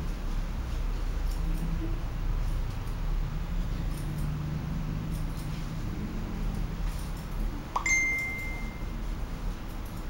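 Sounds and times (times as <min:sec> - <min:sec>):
low background hum: 0:00.0 - 0:10.0
bright ding: 0:07.8 - 0:08.9.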